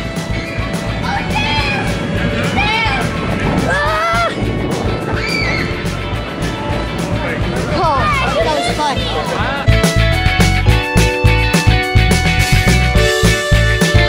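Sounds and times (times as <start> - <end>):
background music: 0.0 - 14.0
children squealing: 0.4 - 7.1.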